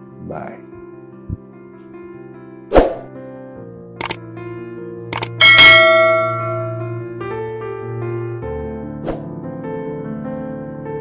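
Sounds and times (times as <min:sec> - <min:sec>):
soft piano music: 0:00.0 - 0:11.0
quick double click: 0:04.0 - 0:04.2, 0:05.1 - 0:05.4
loud bell ding: 0:05.4 - 0:07.0.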